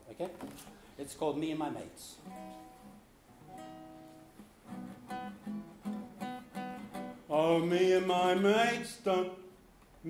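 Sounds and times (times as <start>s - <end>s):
classical guitar strumming: 2.2s - 9.4s.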